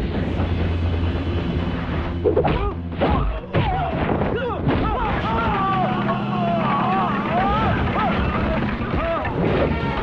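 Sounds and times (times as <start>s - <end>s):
steady low hum: 0.0s - 9.2s
people shouting and yelling: 2.4s - 10.0s.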